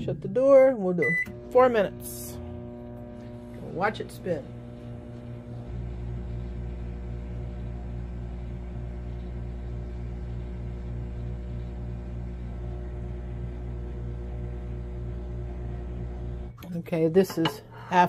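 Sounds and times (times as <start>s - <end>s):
microwave oven humming: 0.0s - 18.0s.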